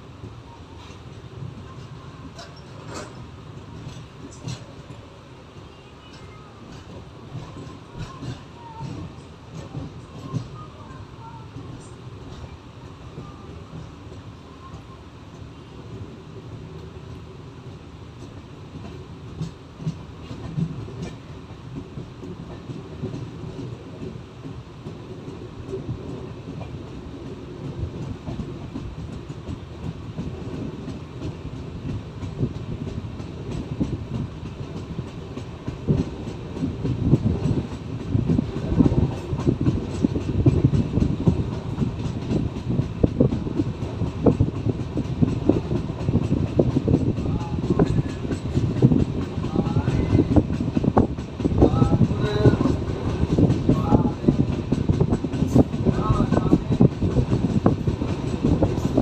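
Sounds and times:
train wheels clattering on rails: 0.0s - 59.0s.

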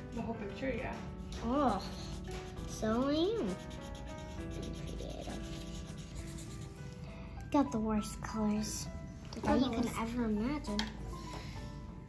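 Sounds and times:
quiet background music: 0.0s - 12.0s
marker rubbing on paper: 0.9s - 6.8s.

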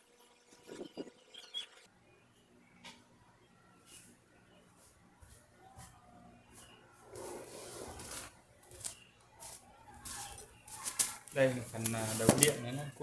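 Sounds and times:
cables and packaging rustling: 7.8s - 12.9s.

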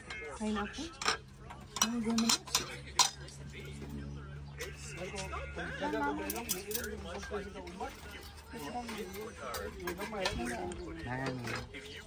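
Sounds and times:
cutlery clinking against dishes: 0.0s - 3.8s, 4.5s - 12.0s.

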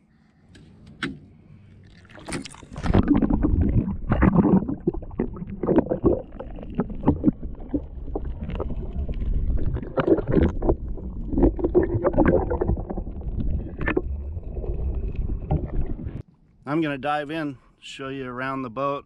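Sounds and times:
underwater rumble of moving water: 1.6s - 16.2s
underwater gurgles and knocks: 1.9s - 16.2s.

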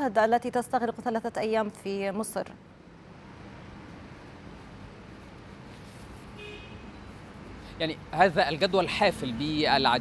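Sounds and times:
street traffic: 0.0s - 10.0s
car horn toot: 6.4s - 6.9s.

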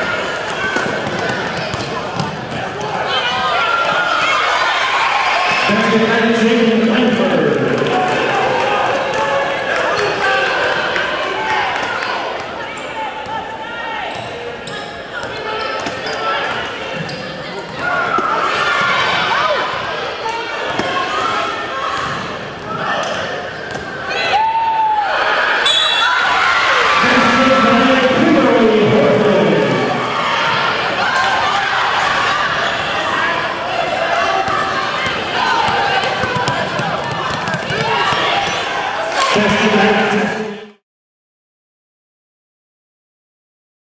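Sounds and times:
sneakers squeaking: 0.5s - 3.4s, 14.1s - 19.8s, 22.0s - 24.1s
basketball dribbling on hardwood: 36.2s - 38.2s.

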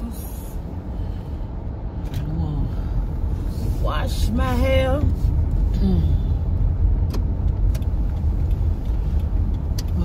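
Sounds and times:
car rumble from inside: 0.0s - 10.0s.

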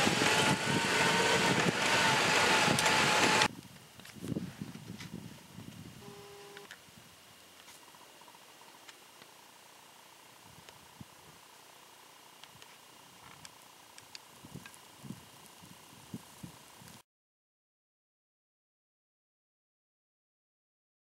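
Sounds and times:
high thin whine: 0.0s - 3.5s
faint steady hiss: 3.5s - 17.0s.

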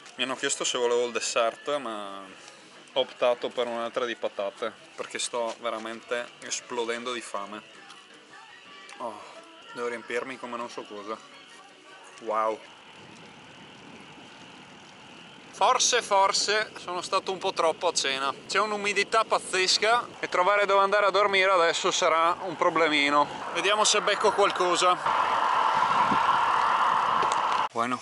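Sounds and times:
bicycle tyres rolling on road: 9.4s - 27.8s
faint ticks: 12.1s - 15.0s.

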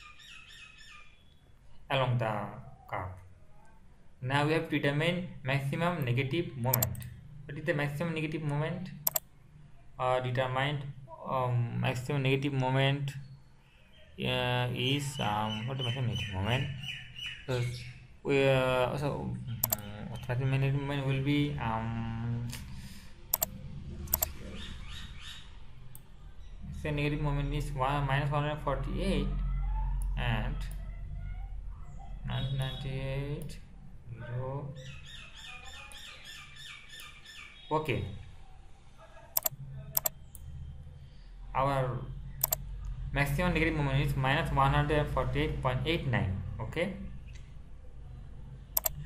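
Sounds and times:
bird chirping: 0.0s - 1.6s, 13.0s - 18.2s, 24.1s - 28.0s, 34.7s - 38.6s
computer mouse clicks: 6.7s - 7.2s, 9.0s - 9.3s, 19.6s - 20.3s, 22.5s - 24.4s, 39.4s - 40.5s, 42.4s - 42.6s, 48.8s - 49.0s
steady low hum: 18.0s - 34.8s.

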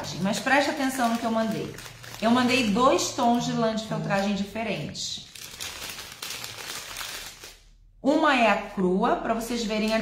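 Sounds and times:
plastic bag crinkling: 0.0s - 7.7s.

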